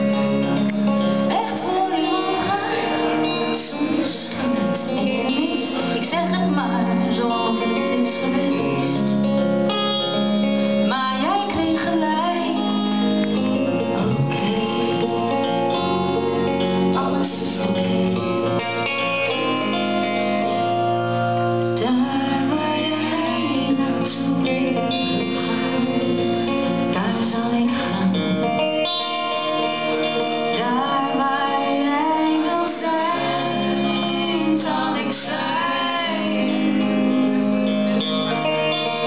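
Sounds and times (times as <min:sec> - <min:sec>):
live band playing: 0:00.0 - 0:39.0
woman singing into a microphone: 0:01.3 - 0:09.4, 0:10.8 - 0:15.9, 0:16.7 - 0:18.7, 0:21.7 - 0:28.7, 0:30.1 - 0:37.8.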